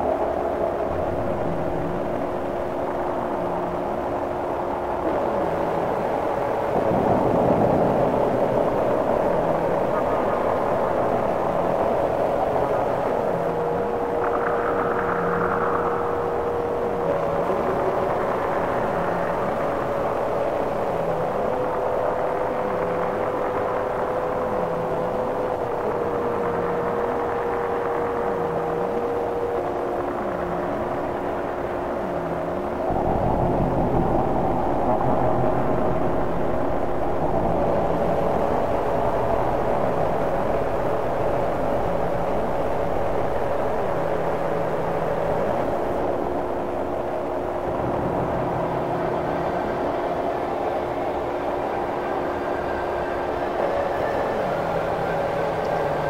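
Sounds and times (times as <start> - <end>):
sustained droning tones: 0.0 - 56.0
heavy low rumble: 32.8 - 43.5
grainy rumbling noise: 32.8 - 43.9.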